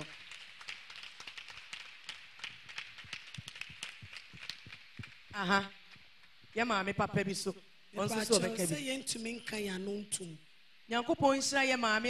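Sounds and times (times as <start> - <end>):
rapid light clicks and taps: 0.0 - 6.6
faint hiss: 0.0 - 12.0.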